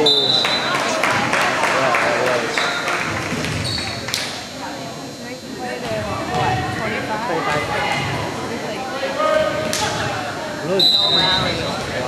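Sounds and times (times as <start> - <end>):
spectators talking and calling out: 0.0 - 12.0.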